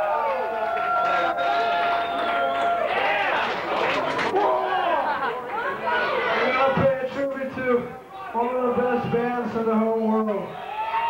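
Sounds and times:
crowd chatter: 0.0s - 10.7s.

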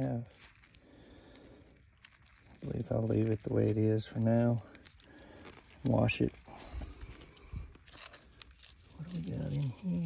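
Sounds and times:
gloved hand digging in rock: 2.2s - 10.0s.

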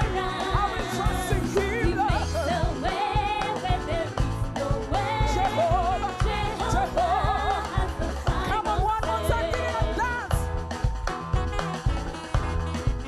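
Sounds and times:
women singing gospel song: 0.0s - 10.5s
live band with bass: 0.0s - 13.0s.

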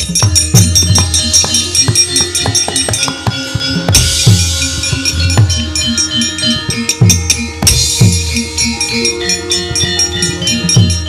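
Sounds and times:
gamelan drums: 0.0s - 11.0s
ringing metallophone tones: 0.0s - 11.0s.

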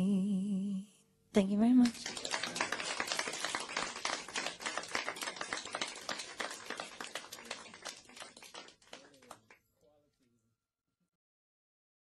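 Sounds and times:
audience applauding: 1.8s - 9.6s.

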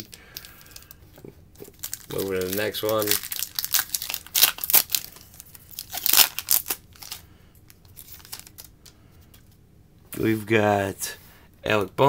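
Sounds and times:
foil wrapper tearing and crinkling: 1.7s - 7.2s, 7.9s - 8.7s.

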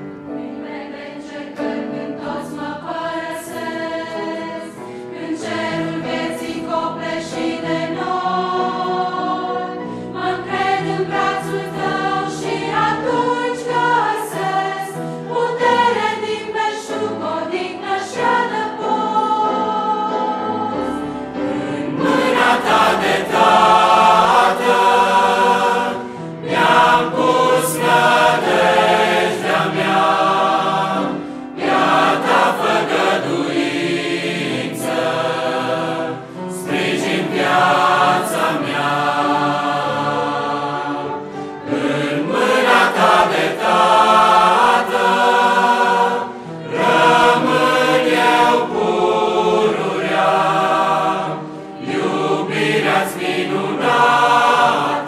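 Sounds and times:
mixed choir singing a hymn: 0.0s - 55.0s.

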